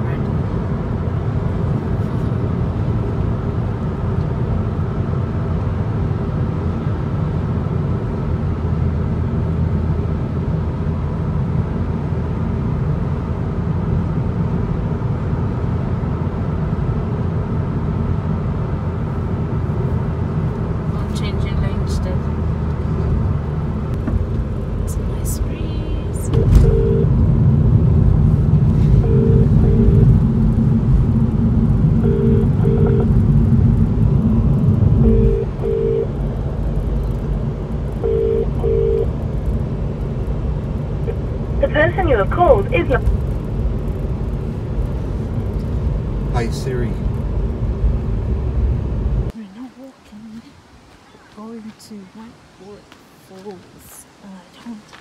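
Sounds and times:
car road and engine rumble: 0.0s - 55.0s
electronic double beep: 26.3s - 27.0s, 29.0s - 30.1s, 32.0s - 33.1s, 35.0s - 36.1s, 38.0s - 39.1s.

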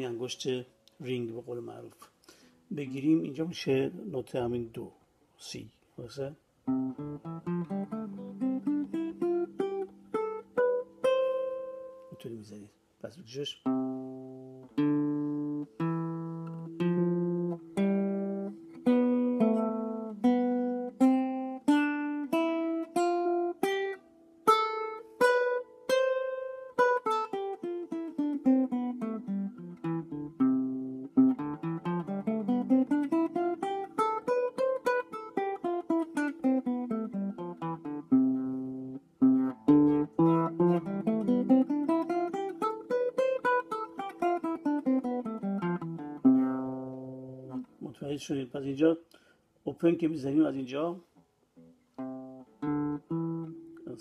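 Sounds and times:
nylon-string guitar playing scale: 0.0s - 54.0s.

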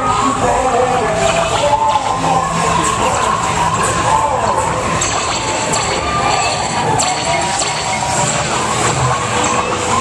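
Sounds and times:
ride soundtrack music: 0.0s - 10.0s.

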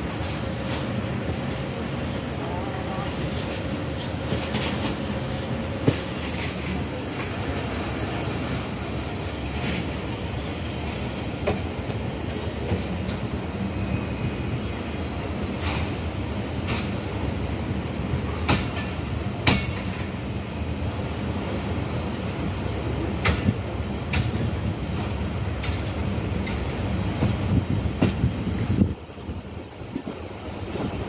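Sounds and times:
train wheels rumbling on rails: 0.0s - 31.0s.

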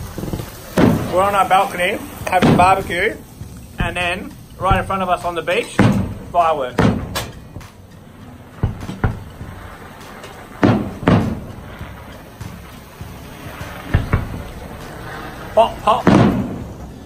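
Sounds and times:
fireworks bursting bangs: 0.0s - 17.0s.

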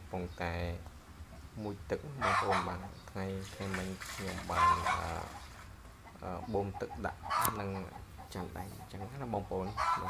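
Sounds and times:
goose splashing in metal basin: 3.4s - 5.8s.

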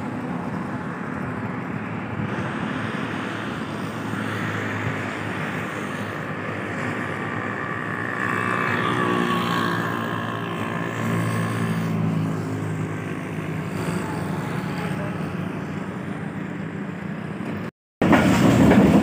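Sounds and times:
train rumbling: 12.4s - 19.0s.

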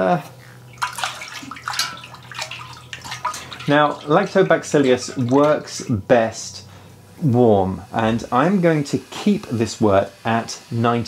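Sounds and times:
liquid sloshing in a metal kettle: 0.6s - 6.0s.

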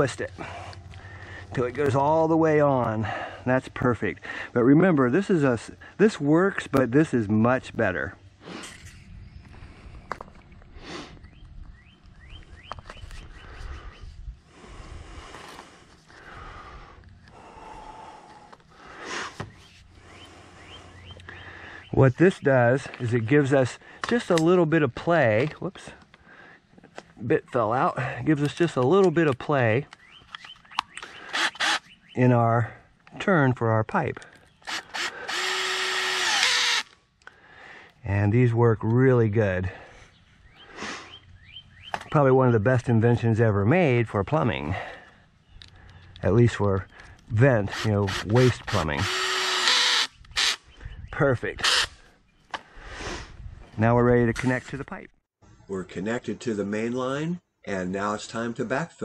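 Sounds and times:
cordless drill running: 31.3s - 31.8s, 34.6s - 36.9s, 47.7s - 50.6s.

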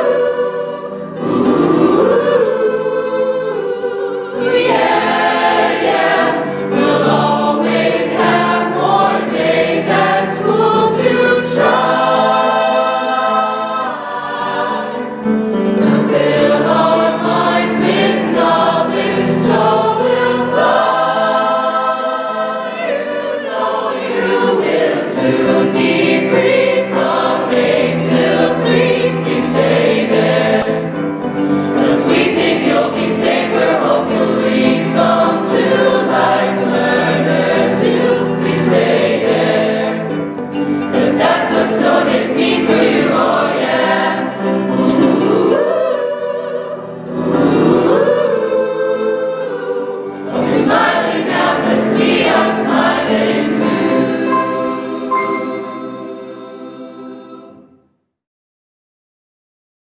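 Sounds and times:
choir singing in harmony: 0.0s - 57.8s.

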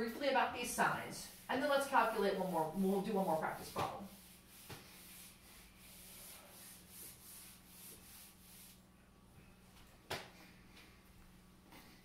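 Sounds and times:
eraser wiping whiteboard: 0.2s - 8.8s.

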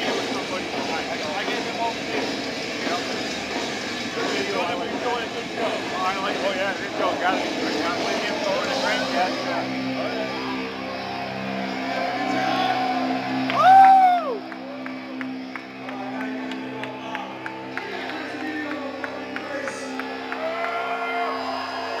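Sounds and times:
crowd noise: 0.0s - 22.0s
music in a concert venue: 0.0s - 22.0s
person whooping: 12.2s - 14.4s.

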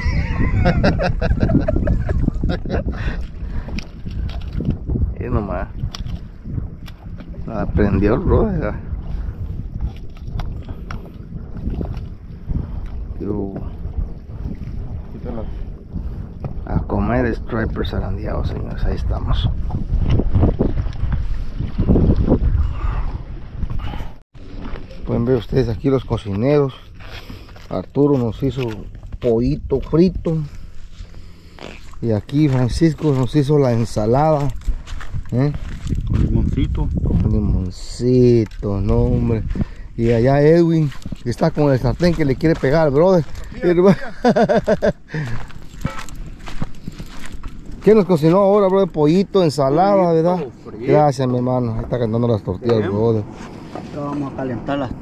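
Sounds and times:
wind buffeting microphone: 0.0s - 55.0s
footsteps on gravelly dirt: 30.8s - 37.3s, 39.0s - 48.6s.

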